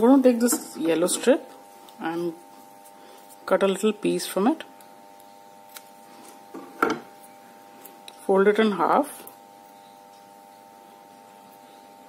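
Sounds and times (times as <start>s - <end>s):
faint steady hum: 0.0s - 12.0s
scissors knocking on wooden table: 6.5s - 7.0s.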